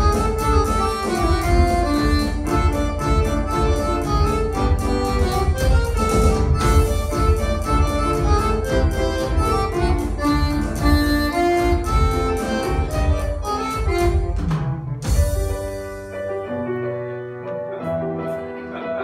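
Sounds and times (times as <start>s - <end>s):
live band playing upbeat tune: 0.0s - 19.0s.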